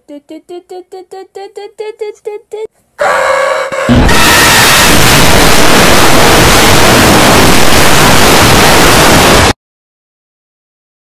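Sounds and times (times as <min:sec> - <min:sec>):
harsh distorted static noise: 0:03.9 - 0:09.6.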